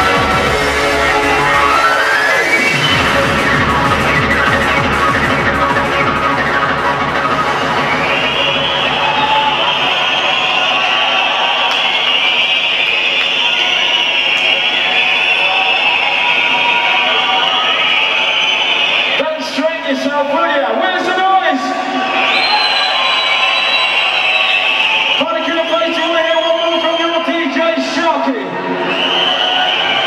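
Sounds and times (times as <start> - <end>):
heavy kick-drum beat: 0.0 - 1.6, 2.8 - 9.7
electronic dance music: 0.0 - 30.0.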